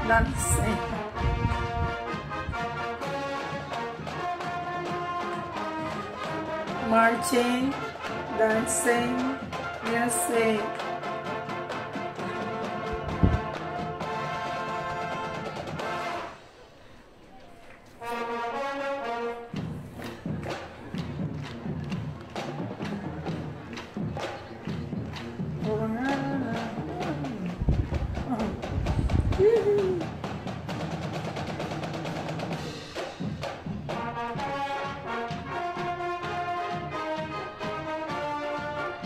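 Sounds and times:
brass section: 0:00.0 - 0:16.5, 0:17.9 - 0:39.0
bass drum thumps: 0:12.9 - 0:13.6, 0:25.5 - 0:30.1.

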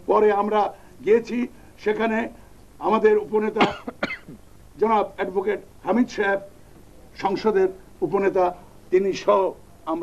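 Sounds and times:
man speaking: 0:00.0 - 0:03.8, 0:04.8 - 0:06.5, 0:07.2 - 0:10.0
man coughing: 0:03.6 - 0:04.4.

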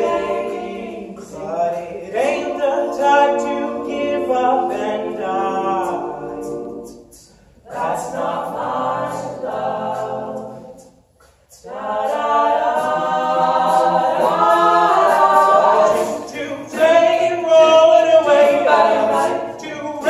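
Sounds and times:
male vocal group singing in harmony: 0:00.0 - 0:20.0.

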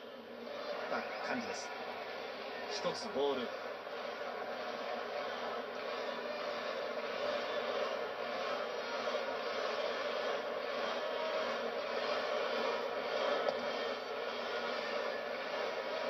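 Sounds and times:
stadium crowd hum: 0:00.0 - 0:16.0.

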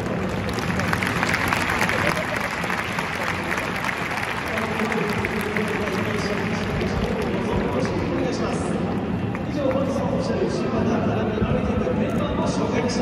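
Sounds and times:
stadium crowd clapping: 0:00.0 - 0:10.3.

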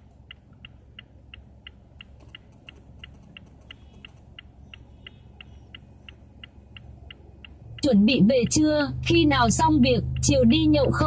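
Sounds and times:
engine and cabin hum: 0:00.0 - 0:11.0
turn signal ticking: 0:00.0 - 0:11.0.

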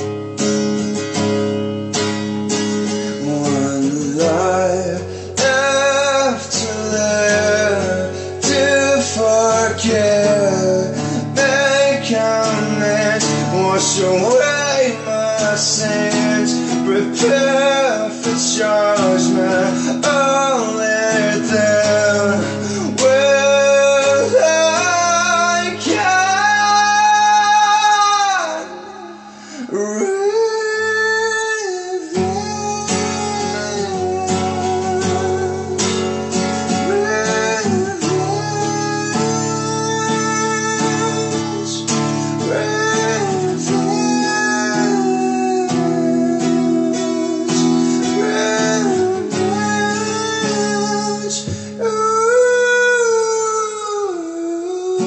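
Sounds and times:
acoustic guitar: 0:00.0 - 0:55.0
man singing high held notes: 0:03.1 - 0:55.0.

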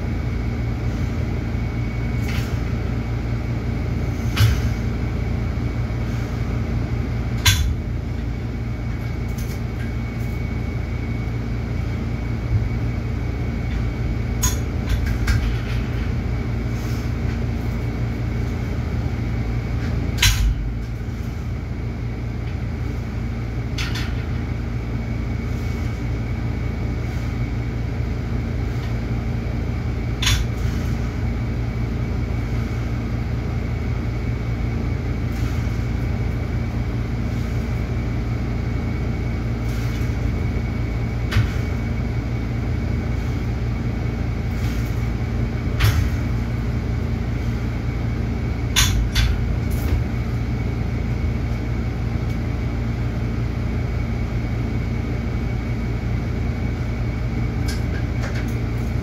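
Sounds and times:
ventilation hum: 0:00.0 - 0:59.0.

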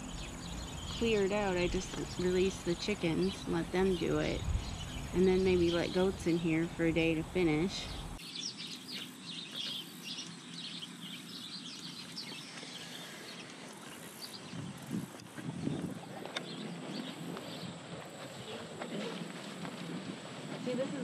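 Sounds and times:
small birds chirping: 0:00.0 - 0:21.0.

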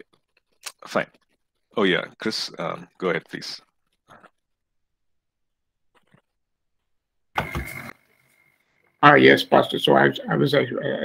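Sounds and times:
burst of microphone noise: 0:07.4 - 0:08.0
steady high whine: 0:07.4 - 0:09.8.

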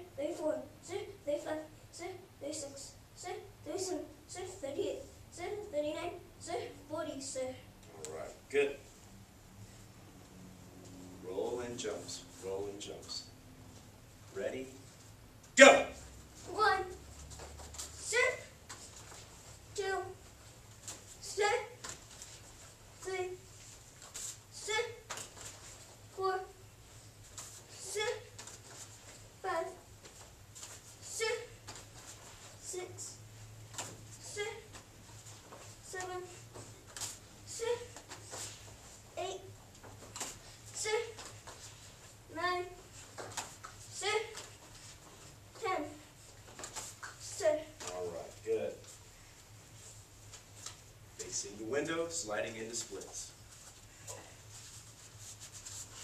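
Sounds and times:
low steady hum: 0:00.0 - 0:56.0
faint rustling and rubbing scrapes: 0:00.2 - 0:15.4, 0:16.0 - 0:56.0.

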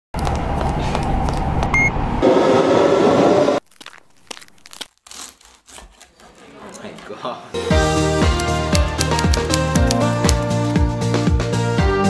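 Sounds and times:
train rumbling: 0:00.2 - 0:03.6
faint crunching and clicking: 0:03.6 - 0:07.1.

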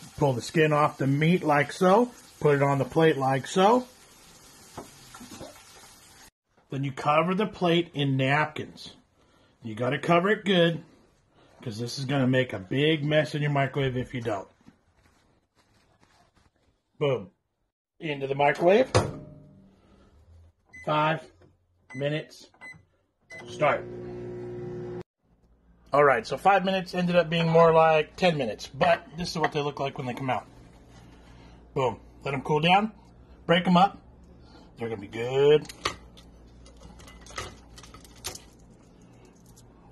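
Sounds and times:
chicken skin crackling and snapping: 0:36.7 - 0:38.8.

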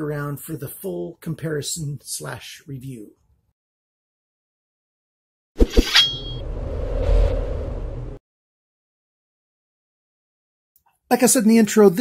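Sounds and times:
high metallic ringing tone: 0:05.8 - 0:06.5
low rumble: 0:06.3 - 0:08.2.

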